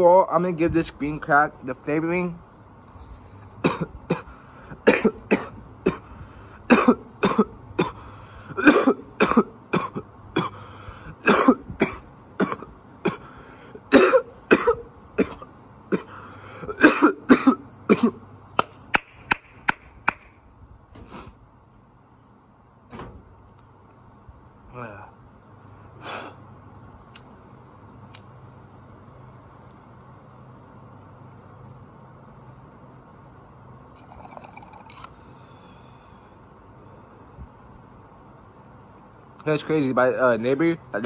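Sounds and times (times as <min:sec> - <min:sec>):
man coughing hard: 0:03.6 - 0:06.1, 0:06.7 - 0:10.6, 0:11.2 - 0:13.3, 0:13.9 - 0:18.2.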